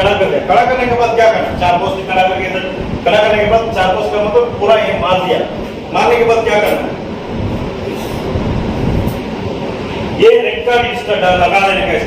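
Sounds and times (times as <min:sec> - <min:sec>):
low mechanical rumble: 0:00.0 - 0:12.0.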